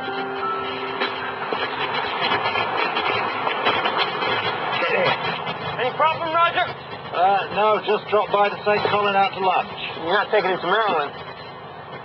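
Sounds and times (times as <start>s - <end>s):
car engine running: 0.0s - 12.0s.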